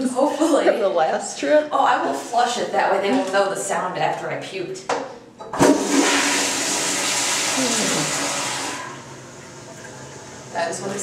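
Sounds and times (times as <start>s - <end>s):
toilet water rushing: 5.6s - 11.0s.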